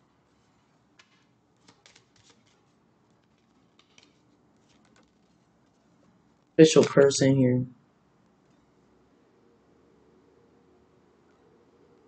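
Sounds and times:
cards being shuffled: 0.2 - 7.1.

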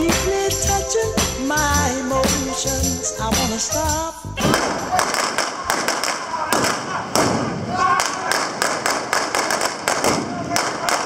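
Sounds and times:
person speaking: 0.0 - 5.1
blank gunshots: 4.4 - 11.0.

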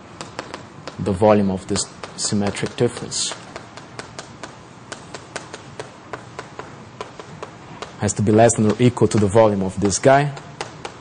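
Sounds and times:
chalk tapping on blackboard: 0.0 - 11.0.

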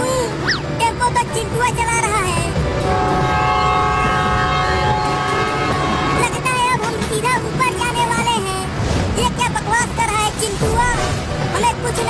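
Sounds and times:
background music: 0.0 - 12.0
train horn chord: 2.7 - 6.7.

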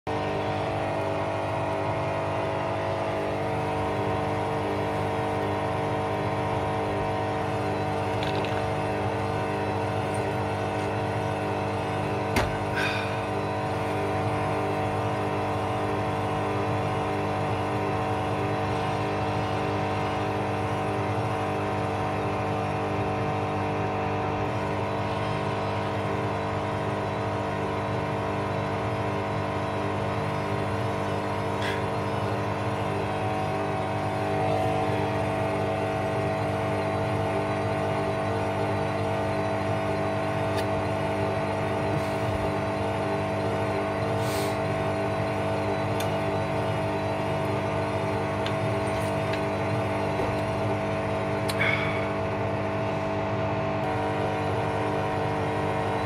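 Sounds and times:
washing machine spinning: 0.1 - 56.0.

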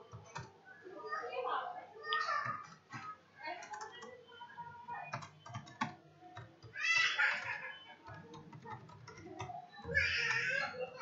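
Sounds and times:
keyboard typing: 0.0 - 0.6, 2.2 - 11.0.

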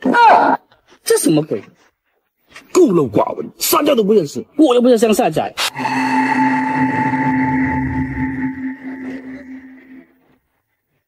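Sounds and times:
low rumble: 5.6 - 10.1
ringing bell-like tone: 5.6 - 10.3.

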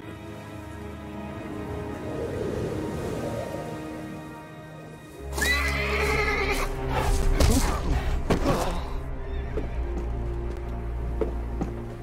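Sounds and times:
dramatic music: 0.0 - 12.0
horse whinnying: 5.3 - 6.7.

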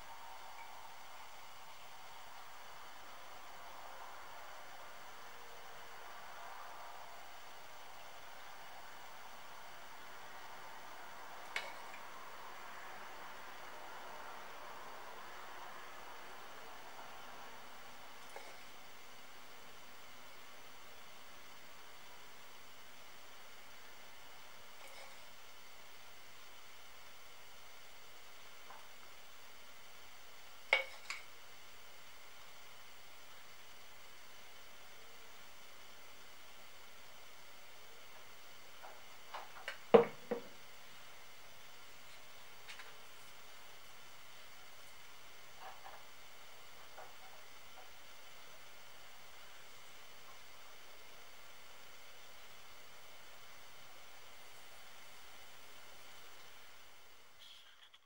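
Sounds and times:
faint steady hiss: 0.0 - 58.0.

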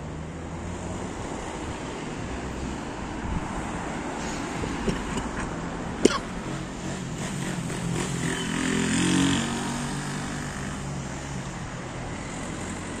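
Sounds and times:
steady traffic noise: 0.0 - 13.0.

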